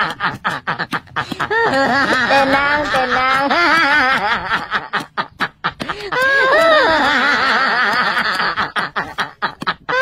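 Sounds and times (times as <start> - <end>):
person snickering: 0.0 - 10.0.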